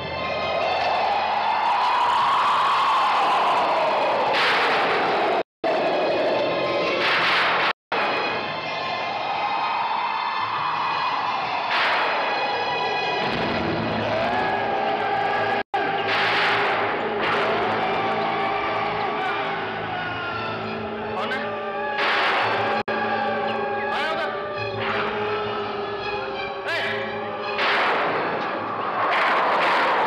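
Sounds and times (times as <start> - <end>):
eerie horror score: 0.0 - 30.0.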